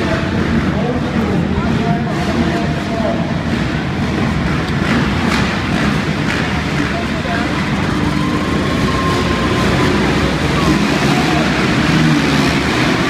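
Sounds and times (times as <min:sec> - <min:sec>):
motorbike engines idling and blipping: 0:00.0 - 0:13.0.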